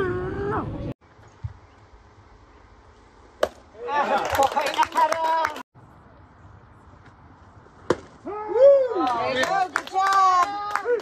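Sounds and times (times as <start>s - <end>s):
outdoor ballpark background: 0.0s - 11.0s
bat hitting baseball: 3.4s - 3.7s, 7.8s - 8.2s.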